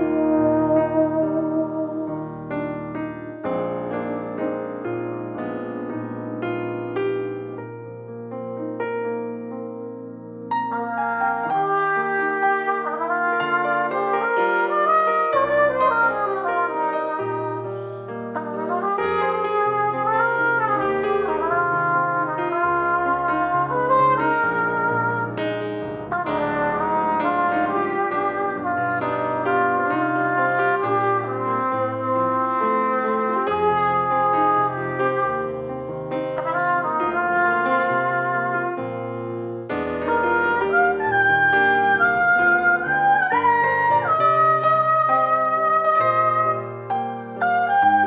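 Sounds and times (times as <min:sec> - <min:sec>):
trumpet playing slow melody: 0:00.0 - 0:04.1, 0:10.5 - 0:48.0.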